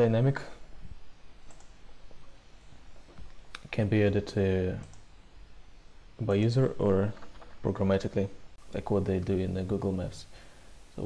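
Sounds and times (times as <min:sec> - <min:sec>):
low background hiss: 0:00.0 - 0:11.0
faint computer mouse clicks: 0:01.4 - 0:01.8.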